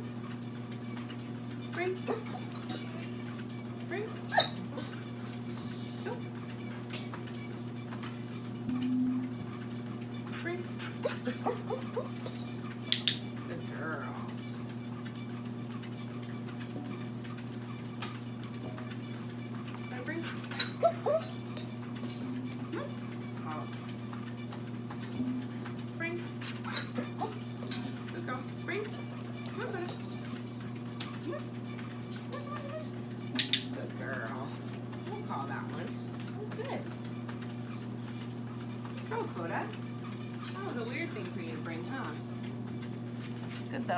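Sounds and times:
steady low hum: 0.0 - 43.9
dog whining: 1.8 - 3.2, 4.0 - 6.3, 10.3 - 12.6, 20.1 - 23.7, 26.3 - 27.6, 28.7 - 30.1, 31.2 - 33.8.

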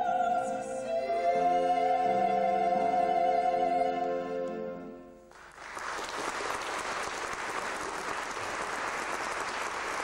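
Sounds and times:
audience applauding: 5.3 - 10.0.

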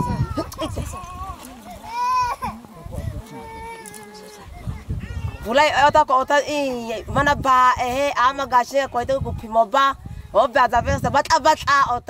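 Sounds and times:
baby crying: 0.0 - 2.6.

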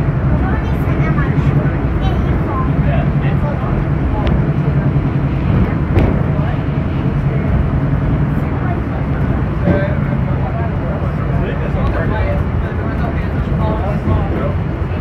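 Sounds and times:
monorail hum and rumble: 0.0 - 15.0.

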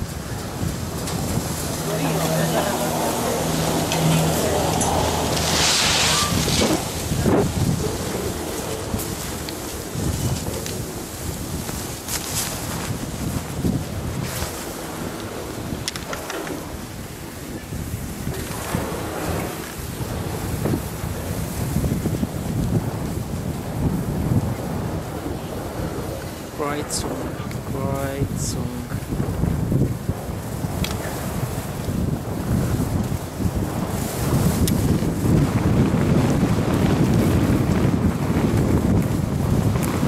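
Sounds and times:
low machinery hum: 0.0 - 9.0
skis scraping over snow: 0.0 - 23.9
wind buffeting microphone: 0.0 - 40.0.

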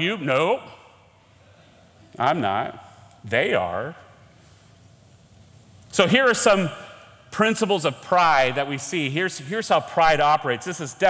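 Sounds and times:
man speaking: 0.0 - 0.9, 2.1 - 4.2, 5.9 - 11.0
faint room hiss: 0.0 - 11.0.

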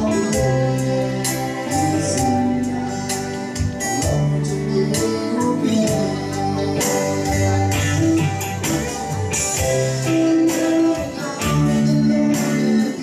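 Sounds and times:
man singing into a microphone: 0.0 - 8.3, 10.0 - 13.0
guitar: 0.0 - 13.0.

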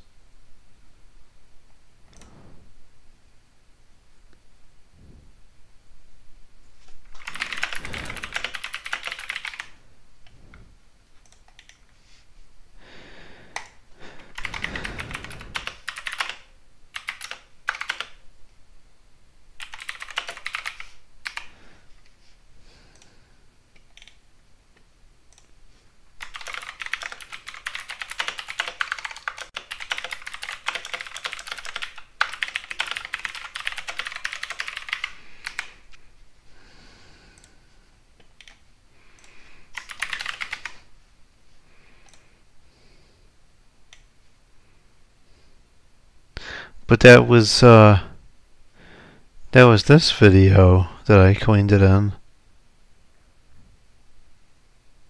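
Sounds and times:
typing on computer keyboard: 7.1 - 9.8, 11.2 - 11.9, 13.6 - 18.2, 19.6 - 21.6, 23.8 - 24.2, 26.2 - 35.8, 38.3 - 38.6, 39.2 - 40.8.

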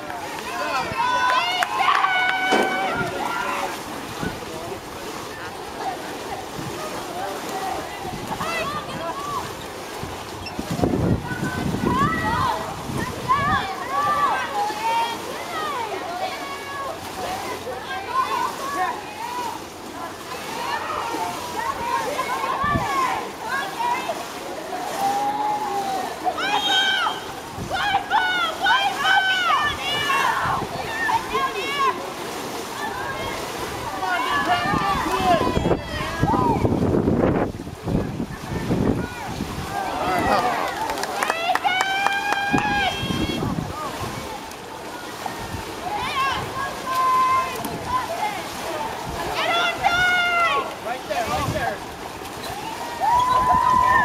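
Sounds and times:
swimmers splashing: 0.0 - 54.0
voices shouting: 0.4 - 4.4, 11.2 - 36.7, 38.4 - 54.0
wind buffeting microphone: 0.7 - 4.9, 7.6 - 14.4, 27.2 - 31.6, 32.8 - 44.4, 51.2 - 54.0
distant shouted call: 0.8 - 3.7.

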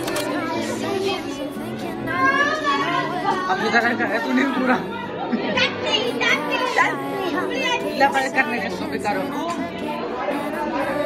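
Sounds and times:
party chatter: 0.0 - 11.0.

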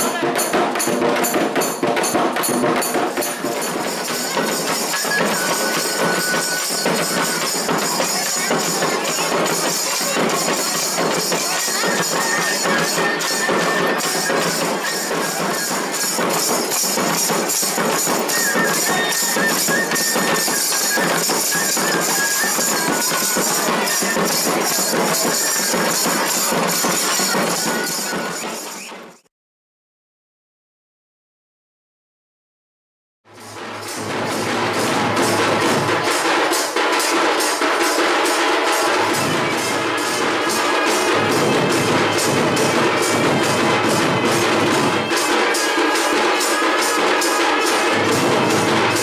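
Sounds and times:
bright metallic percussion: 0.0 - 29.2, 33.3 - 49.0
folk dance music with hand drums: 0.0 - 29.3, 33.3 - 49.0.

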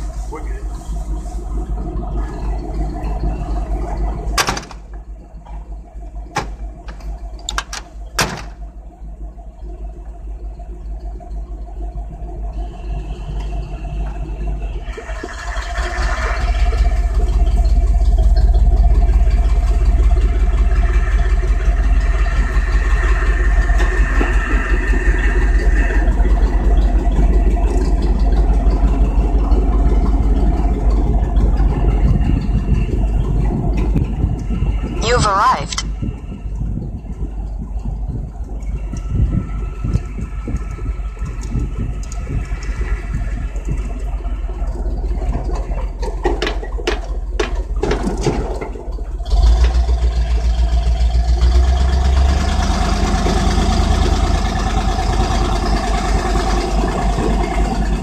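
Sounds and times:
vehicle engine revving: 49.2 - 58.0.

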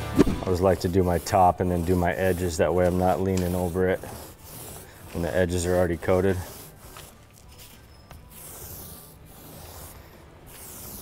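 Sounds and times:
paint roller rubbing hiss: 0.5 - 11.0.

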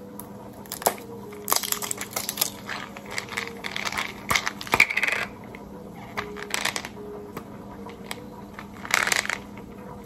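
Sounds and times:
pills rattling in bottle: 0.7 - 5.3, 8.0 - 9.5.

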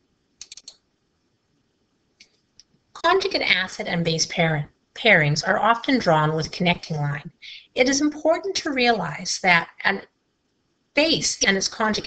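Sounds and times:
sharp computer clicks: 0.4 - 0.8.

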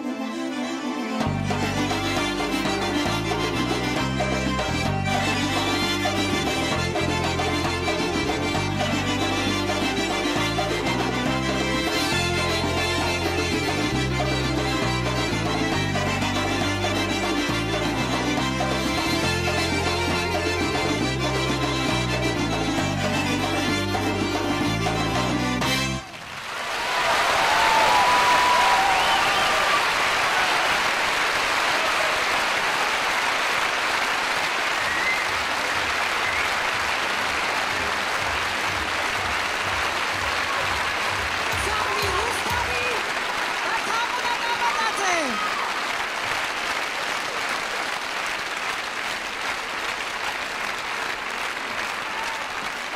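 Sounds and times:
audience applauding: 23.4 - 52.9
shouts from crowd: 26.8 - 30.9, 43.6 - 45.9, 52.0 - 52.7.

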